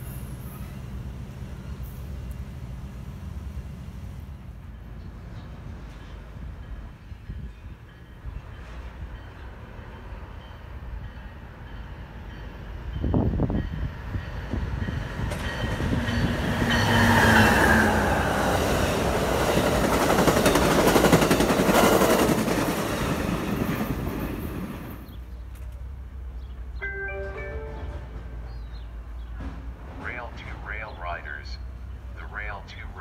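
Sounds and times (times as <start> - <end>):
passenger train passing: 0.0 - 33.0.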